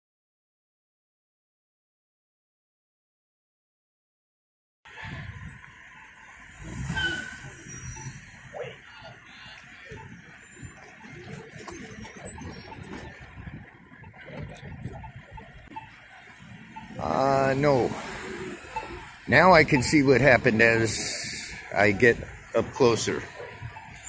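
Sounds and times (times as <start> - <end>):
faint distant voices: 4.9 - 24.0
road traffic: 4.9 - 24.0.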